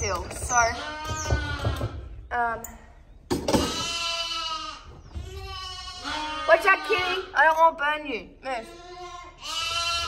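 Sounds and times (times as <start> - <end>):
lamb bleating: 3.6 - 7.3, 8.6 - 10.0.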